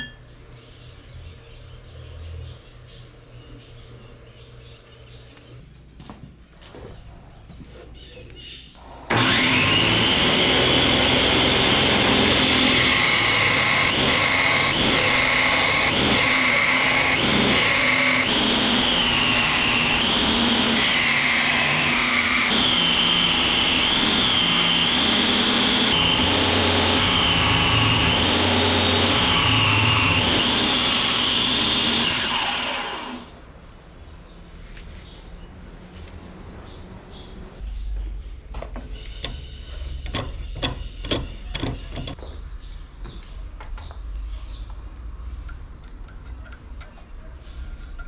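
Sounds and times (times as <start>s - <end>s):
belt grinder whining: 9.0s - 33.4s.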